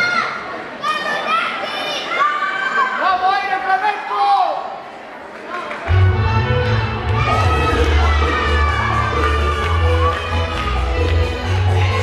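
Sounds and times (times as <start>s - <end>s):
audience chatter in a hall: 0.0s - 12.0s.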